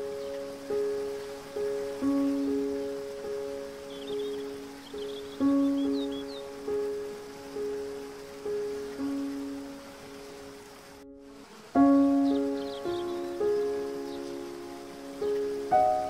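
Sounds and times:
faint high bird chirps: 0.0s - 7.3s, 12.0s - 16.0s
slow solo piano music: 0.0s - 16.0s
water hiss: 0.0s - 16.0s.

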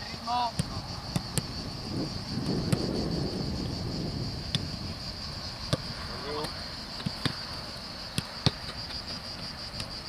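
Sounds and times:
insects chirring: 0.0s - 10.0s
football kicks on grass: 0.5s - 1.5s, 2.4s - 2.9s, 5.7s - 7.4s, 8.2s - 8.8s.

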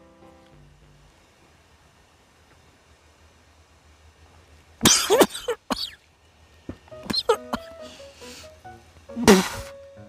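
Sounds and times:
man coughing and spluttering: 4.8s - 6.0s, 7.1s - 7.7s.

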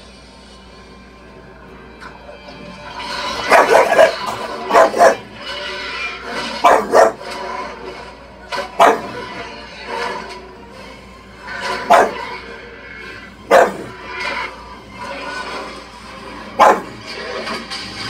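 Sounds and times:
film soundtrack music from television: 0.0s - 18.0s
dog barking: 3.4s - 5.3s, 6.6s - 7.3s, 8.7s - 9.3s, 11.8s - 12.3s, 13.4s - 14.0s, 16.6s - 17.0s.

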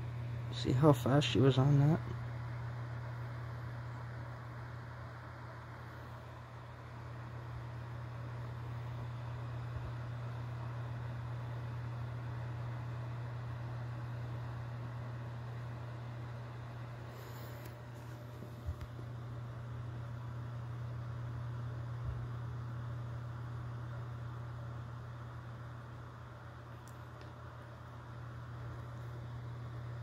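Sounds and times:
low hum: 0.0s - 30.0s.

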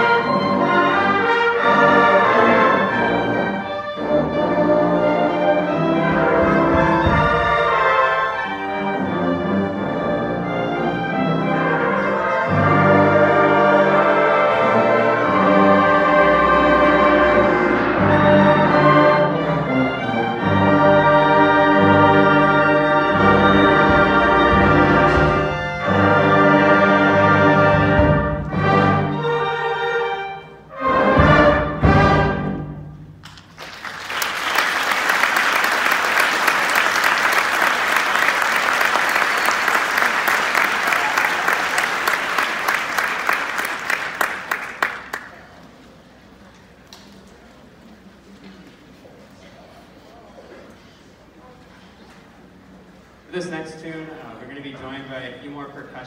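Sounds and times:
wind band playing chords: 0.0s - 33.2s, 34.1s - 46.3s
audience applauding: 33.2s - 45.6s.

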